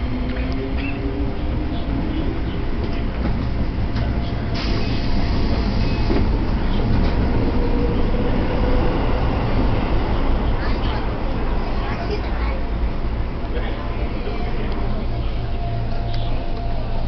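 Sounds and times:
train wheels rumbling: 0.0s - 17.0s.

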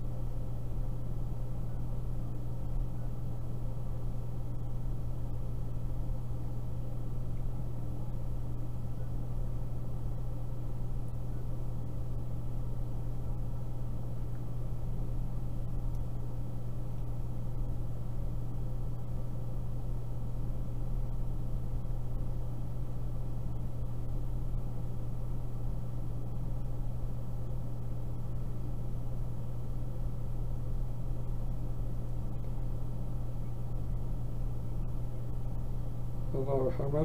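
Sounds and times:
constant hiss: 0.0s - 37.0s
low hum: 0.0s - 37.0s.

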